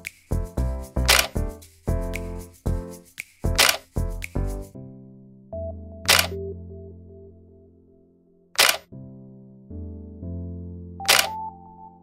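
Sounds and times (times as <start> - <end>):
soft keyboard chord music: 0.0 - 12.0.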